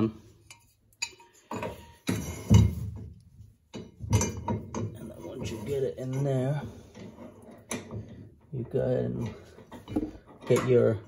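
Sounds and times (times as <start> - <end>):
metal tool clinking and knocking: 0.4 - 8.5.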